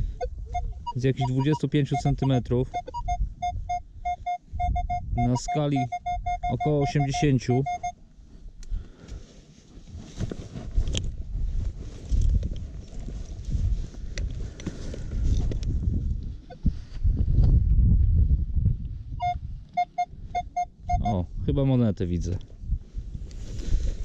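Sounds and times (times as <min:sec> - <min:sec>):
metal detector beeps: 0:00.2 - 0:08.0, 0:19.2 - 0:21.2.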